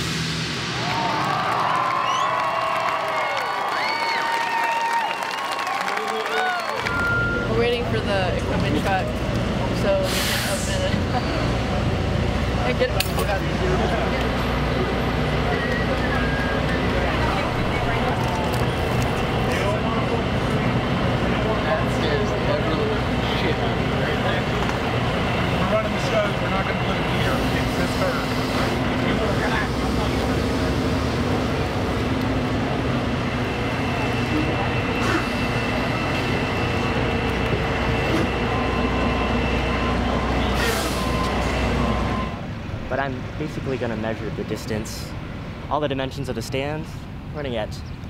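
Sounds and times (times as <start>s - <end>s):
people talking: 6.0s - 12.0s, 12.6s - 24.9s, 25.6s - 31.8s, 42.9s - 47.8s
diesel truck engine running: 6.8s - 45.9s.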